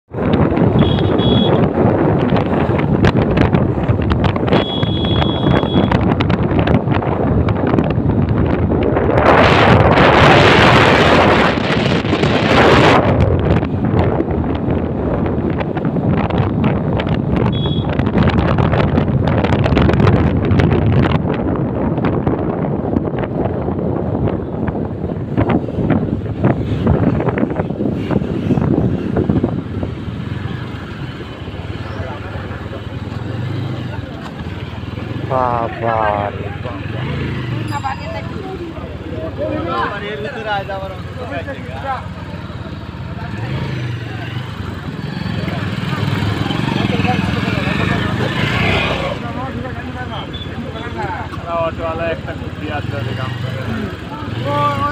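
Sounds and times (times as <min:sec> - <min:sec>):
road noise: 0:00.0 - 0:54.9
wind buffeting microphone: 0:00.1 - 0:39.5
motorcycle engine: 0:21.9 - 0:54.9.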